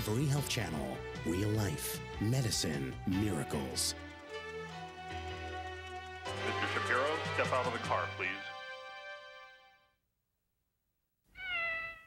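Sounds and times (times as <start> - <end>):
kitten meowing: 11.3 - 12.0.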